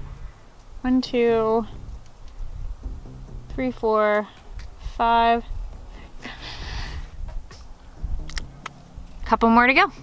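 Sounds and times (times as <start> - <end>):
low steady rumble: 0.0 - 10.0
woman's breathy exhale: 6.0 - 7.2.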